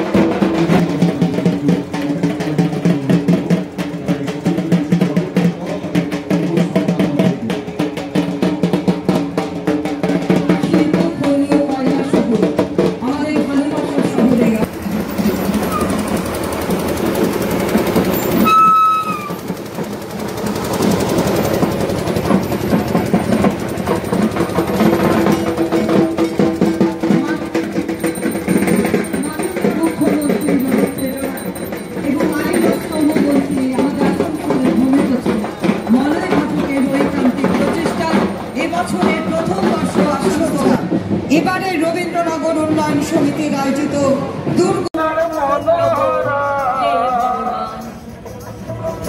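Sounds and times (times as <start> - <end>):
fast dense drumming: 0.0 - 43.6
voices: 10.0 - 49.0
high steady tone: 14.6 - 38.4.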